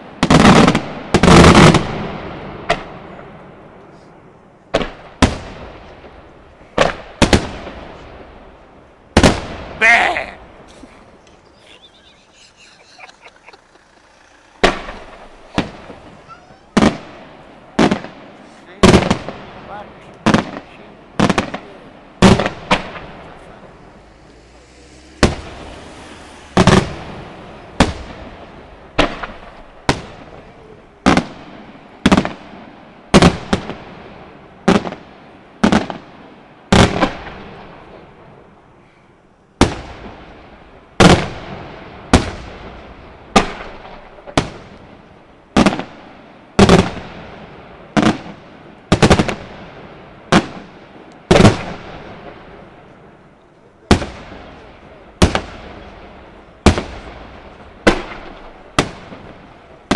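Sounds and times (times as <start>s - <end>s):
firework shells bursting: 10.6s - 19.5s.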